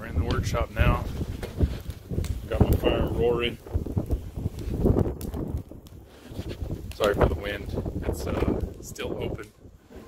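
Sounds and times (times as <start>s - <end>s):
wind buffeting microphone: 0.0s - 10.0s
wood fire crackling: 0.0s - 10.0s.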